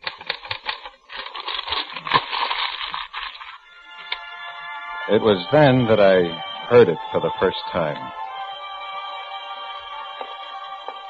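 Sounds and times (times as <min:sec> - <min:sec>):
dense crackling clatter: 0:00.0 - 0:03.6.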